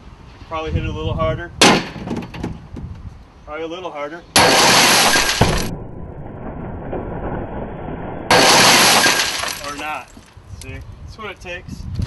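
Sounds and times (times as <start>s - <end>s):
glass pieces falling: 4.4s - 5.7s, 8.3s - 10.2s
glass shattering: 4.4s - 5.8s, 8.3s - 10.2s.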